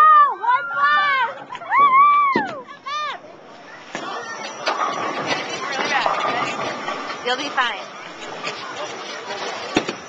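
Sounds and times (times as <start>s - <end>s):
people talking: 2.5s - 9.9s
bowling knocks and clatter: 3.9s - 10.0s.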